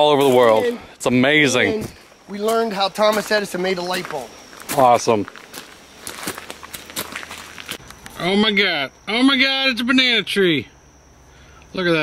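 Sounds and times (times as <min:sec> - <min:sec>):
footsteps crunching on gravel: 0:01.8 - 0:08.2.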